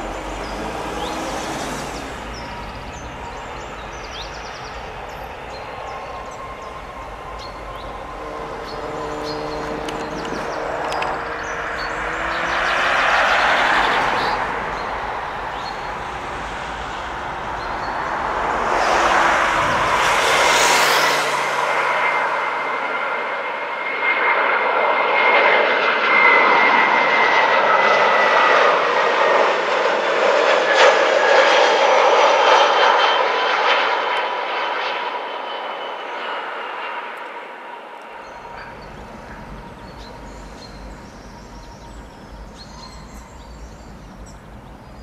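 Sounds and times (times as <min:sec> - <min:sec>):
jet airliner passing low: 0:00.0 - 0:45.0.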